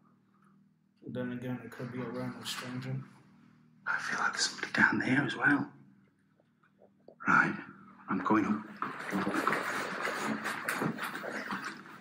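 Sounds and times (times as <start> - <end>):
footsteps climbing stairs: 8.8 - 12.0
handheld camera rustling: 8.8 - 12.0.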